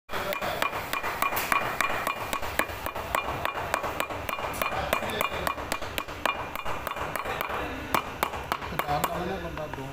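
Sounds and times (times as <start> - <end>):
hammer tapping on shoe: 0.2 - 9.7.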